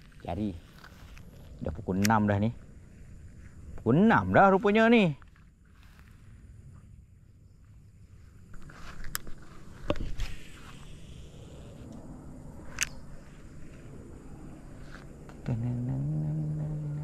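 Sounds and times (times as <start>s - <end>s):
footsteps through grass: 0.0s - 1.8s, 2.6s - 6.8s, 8.2s - 10.8s
low steady hum: 0.0s - 17.0s.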